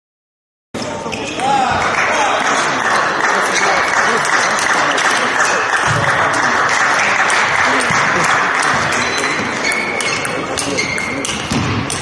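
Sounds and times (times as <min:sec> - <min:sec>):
chatter of voices: 0:00.8 - 0:12.0
table tennis ball bouncing: 0:04.2 - 0:12.0.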